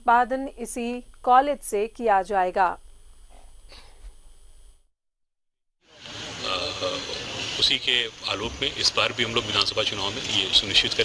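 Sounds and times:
faint background noise: 0:05.9 - 0:11.0.

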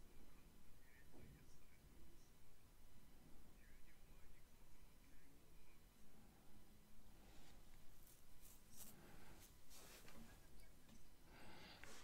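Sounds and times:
faint scratching rustles: 0:07.1 - 0:12.0.

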